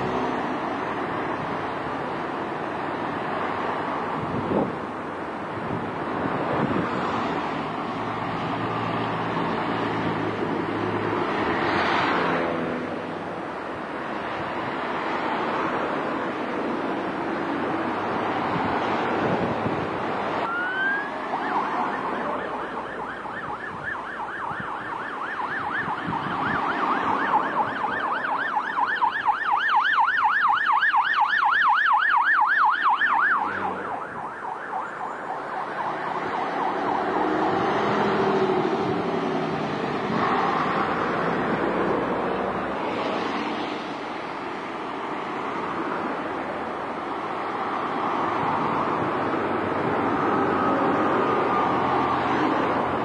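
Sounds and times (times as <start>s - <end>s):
emergency vehicle siren: 0.0s - 53.0s
passing road traffic: 0.0s - 53.0s.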